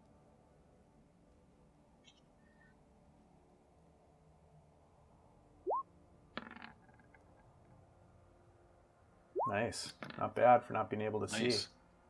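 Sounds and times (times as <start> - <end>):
faint background hiss: 7.0 - 12.0.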